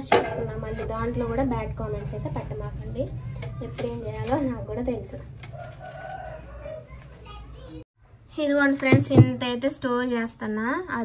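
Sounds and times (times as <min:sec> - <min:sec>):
faint children's voices: 0:02.3 - 0:04.6, 0:06.1 - 0:07.9.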